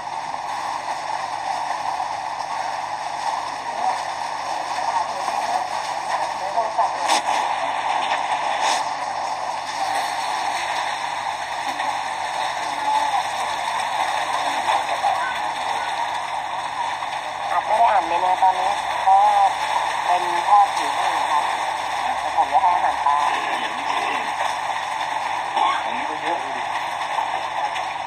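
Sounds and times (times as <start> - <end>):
people talking: 4.9 - 7.5, 11.6 - 13.4, 14.2 - 16.3, 17.4 - 24.4, 25.6 - 26.7.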